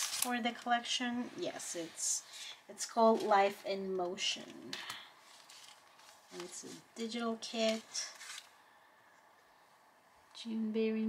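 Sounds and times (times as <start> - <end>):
cardstock pieces rustling: 0.0 - 0.8, 4.4 - 8.5.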